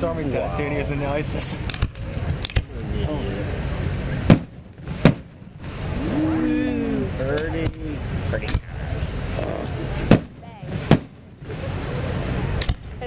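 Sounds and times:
low rumble of crowd: 0:00.0 - 0:13.0
fireworks bangs: 0:00.9 - 0:06.4, 0:07.1 - 0:13.0.

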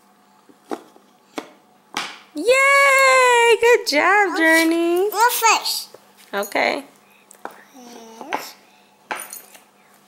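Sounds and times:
child's vocal sound: 0:07.6 - 0:08.6.

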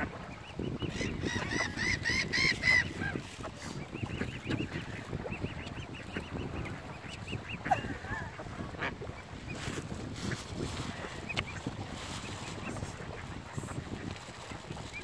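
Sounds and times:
swan cygnets peeping: 0:00.0 - 0:15.0.

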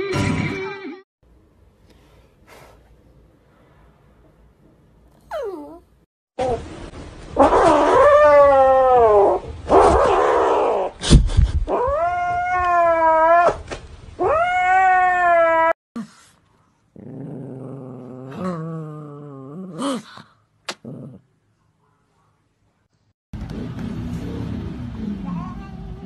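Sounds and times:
small dog growling: 0:16.9 - 0:21.3.

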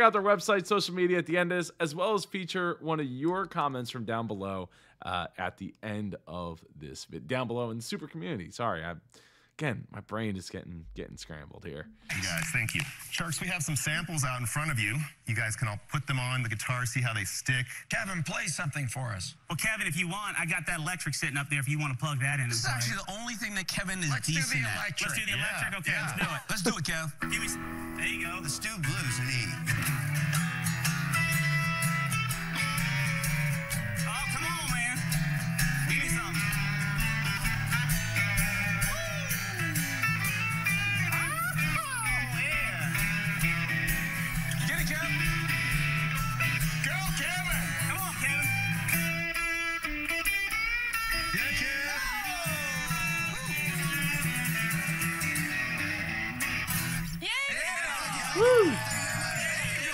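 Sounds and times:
electric guitar playing blues: 0:27.2 - 0:57.2.

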